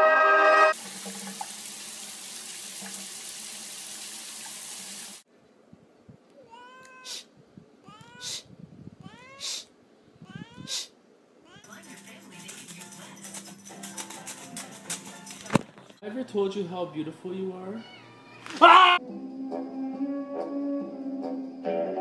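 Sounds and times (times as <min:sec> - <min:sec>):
cat meowing: 0:06.4 - 0:08.4, 0:09.0 - 0:09.6, 0:10.2 - 0:11.7, 0:17.8 - 0:19.0.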